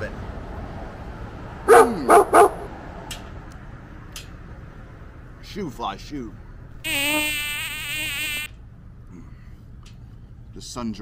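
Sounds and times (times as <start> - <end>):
fly buzzing: 6.8 - 8.5.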